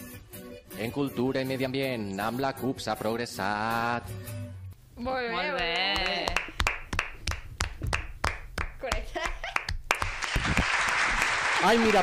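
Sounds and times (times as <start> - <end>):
people clapping hands: 5.5 - 12.0
large crowd applauding: 6.0 - 8.4, 9.6 - 12.0.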